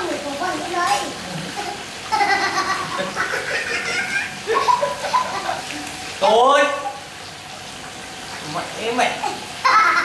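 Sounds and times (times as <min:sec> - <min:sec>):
fish deep-frying in hot oil: 0:00.0 - 0:10.0
boy laughing: 0:02.1 - 0:05.6, 0:09.6 - 0:10.0
man laughing: 0:02.2 - 0:05.6.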